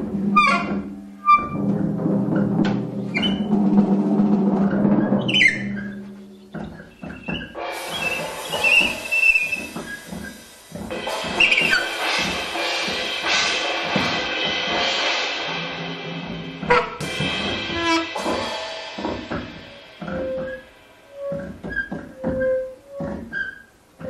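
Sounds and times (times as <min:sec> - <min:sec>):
mallet strokes on toms and cymbals: 0:00.0 - 0:23.1
sustained cymbal wash: 0:07.6 - 0:21.3.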